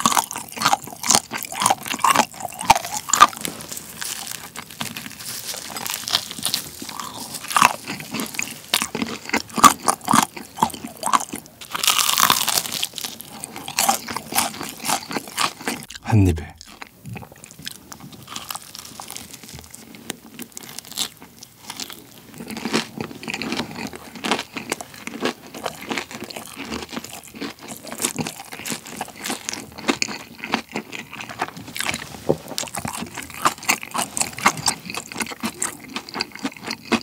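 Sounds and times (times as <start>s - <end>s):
chewing fried chicken: 0.0s - 37.0s
crunches of crispy coating: 0.0s - 37.0s
wet mouth sounds: 13.8s - 17.4s.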